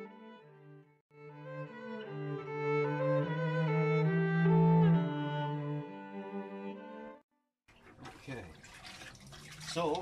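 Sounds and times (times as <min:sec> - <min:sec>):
cello music: 0:00.0 - 0:07.2
water sloshing in mop bucket: 0:07.7 - 0:10.0.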